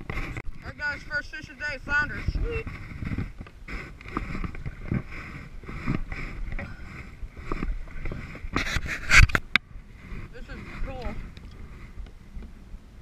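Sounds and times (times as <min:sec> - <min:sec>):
waves lapping against kayak hull: 0:00.0 - 0:12.8
low irregular rumble: 0:00.0 - 0:13.0.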